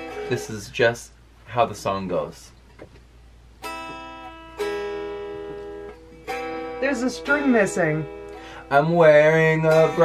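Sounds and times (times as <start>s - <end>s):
electric guitar chords ringing: 0.0s - 0.7s, 3.6s - 10.0s.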